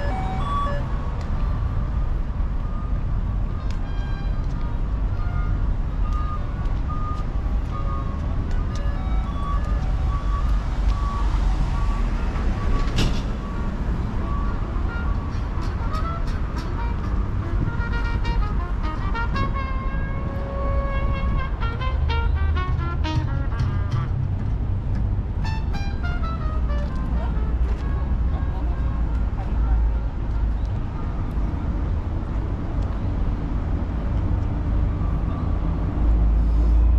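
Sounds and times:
road traffic rumble: 0:00.0 - 0:36.9.

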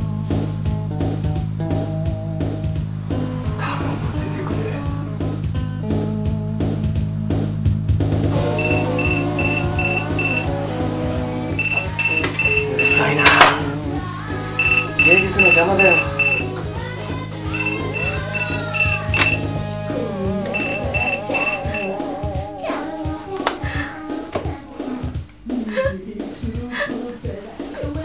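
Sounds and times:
music: 0:00.0 - 0:28.0
phone ringtone beeps: 0:08.5 - 0:10.6, 0:11.6 - 0:13.5, 0:14.6 - 0:16.6, 0:17.5 - 0:19.5, 0:20.5 - 0:22.0.

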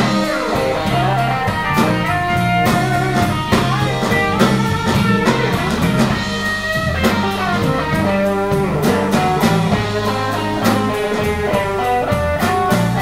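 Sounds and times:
drum kit: 0:00.0 - 0:13.0
electric guitar lead notes: 0:00.0 - 0:13.0
rhythm guitar: 0:00.0 - 0:13.0.

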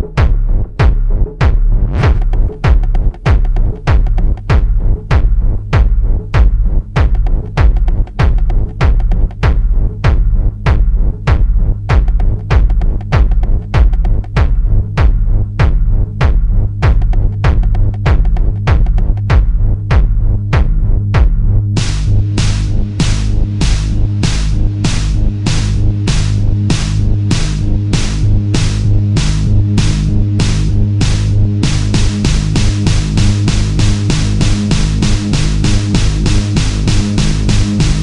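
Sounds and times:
hi-hat ticks: 0:00.0 - 0:19.5, 0:21.8 - 0:38.0
kick drum: 0:00.0 - 0:38.0
techno track with pulsing bass: 0:00.0 - 0:38.0.

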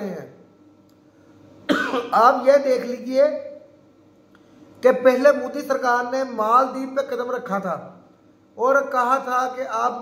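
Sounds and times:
man talking: 0:00.0 - 0:00.4, 0:02.0 - 0:03.7, 0:04.8 - 0:08.0, 0:08.6 - 0:10.0
man coughing: 0:01.7 - 0:02.4.

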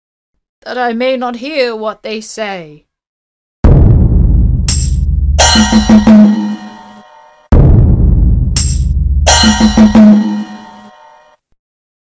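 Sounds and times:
low drum stroke ringing: 0:04.7 - 0:06.9.

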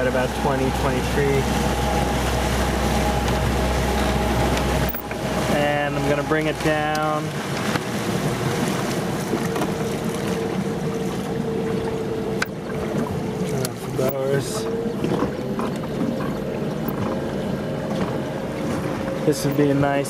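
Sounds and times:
water rushing along hull: 0:00.0 - 0:20.0
wind: 0:00.0 - 0:20.0.

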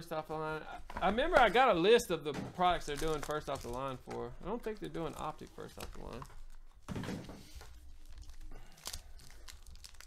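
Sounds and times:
foil wrapper tearing and crinkling: 0:02.8 - 0:06.7, 0:07.6 - 0:10.0.

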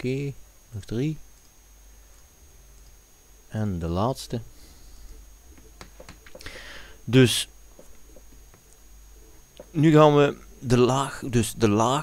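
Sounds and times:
faint high whine: 0:00.0 - 0:12.0
computer mouse clicking: 0:05.5 - 0:06.5.

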